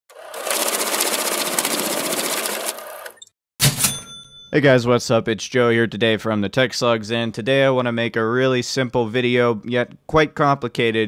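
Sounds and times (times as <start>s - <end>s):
fast mechanical rattle: 0.1s - 3.2s
sharp metallic ringing hit: 3.6s - 4.5s.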